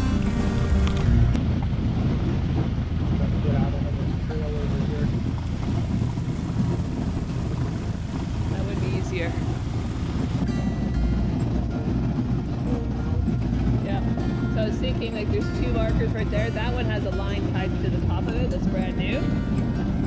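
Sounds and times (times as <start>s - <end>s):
background music: 0.0s - 1.6s, 10.4s - 20.0s
boat breaking thin ice: 0.0s - 20.0s
outboard motor running: 0.0s - 20.0s.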